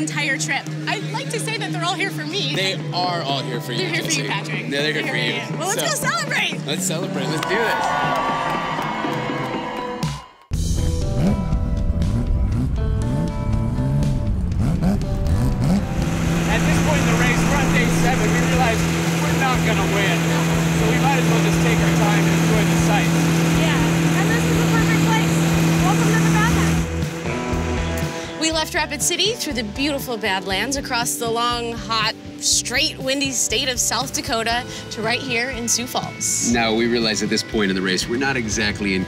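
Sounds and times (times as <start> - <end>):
background music: 0.0 - 39.0
car engine revving: 10.6 - 29.8.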